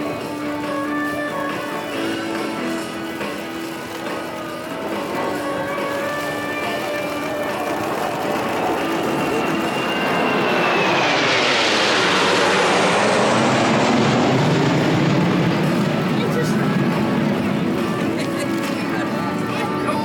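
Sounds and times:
jets flying past: 5.4 - 19.9.

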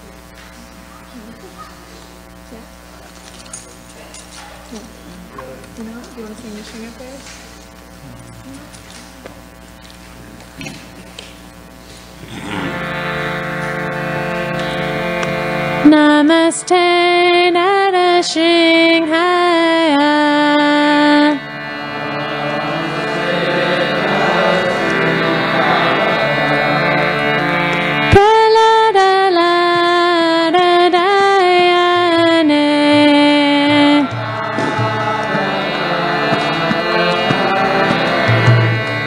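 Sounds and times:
faint indistinct voices: 0.0 - 12.9
instrumental drone: 0.0 - 39.0
steady electrical hum: 0.0 - 39.0
person singing long note: 12.2 - 39.0.

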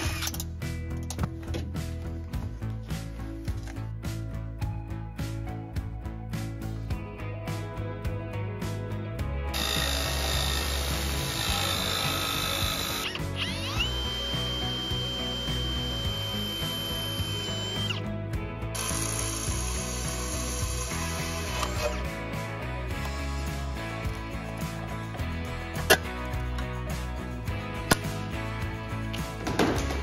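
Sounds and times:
cordless drill boring through metal: 0.0 - 0.5, 9.5 - 18.0, 18.8 - 22.1
background music: 0.0 - 30.0.

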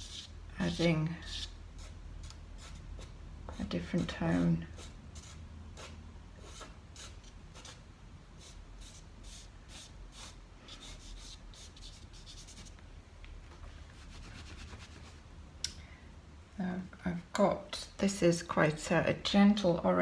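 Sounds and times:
pastel stick scratching on paper: 0.0 - 7.8, 8.4 - 12.7.

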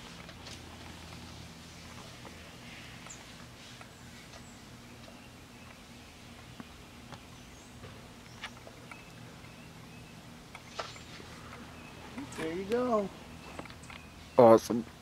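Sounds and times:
low steady hum: 0.0 - 15.0
songbird chirping: 0.4 - 15.0.

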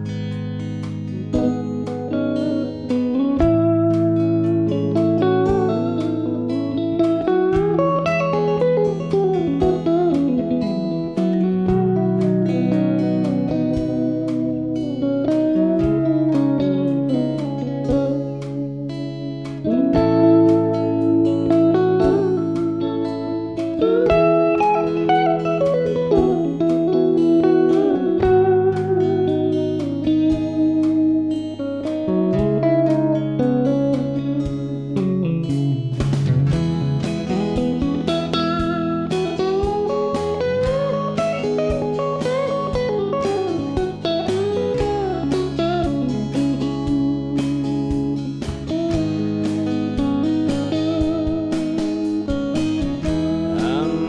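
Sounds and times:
electric guitar lead line: 0.0 - 54.0
rhythm guitar chords: 0.0 - 54.0
steady drum beat: 2.9 - 18.6, 31.9 - 54.0.

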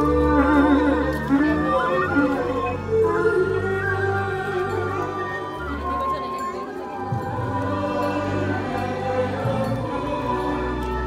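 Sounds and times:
choir singing a hymn: 7.1 - 11.0.

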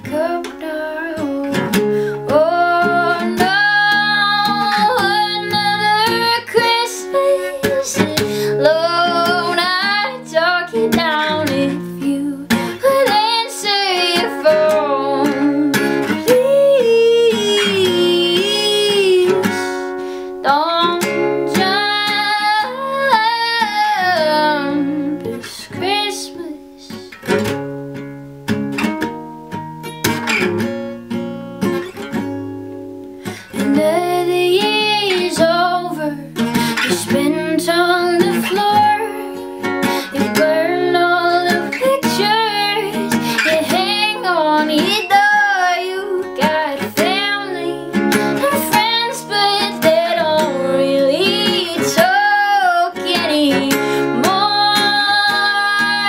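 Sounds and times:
woman singing: 0.0 - 27.2, 33.2 - 56.0
acoustic guitar strumming: 0.0 - 56.0.

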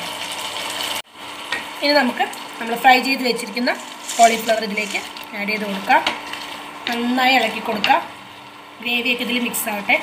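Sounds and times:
sauce sizzling while stirred: 0.0 - 8.8.

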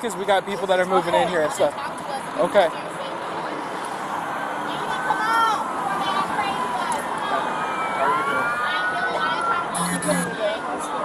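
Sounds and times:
traffic noise: 0.0 - 11.0
emergency siren wailing: 6.4 - 11.0
short electronic beep: 9.8 - 10.4.

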